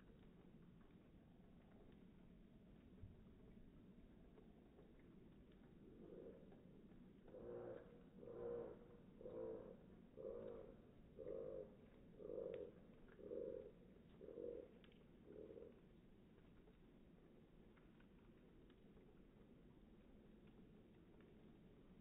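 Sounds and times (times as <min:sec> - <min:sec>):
faint animal hoots: 0:07.3 - 0:15.8.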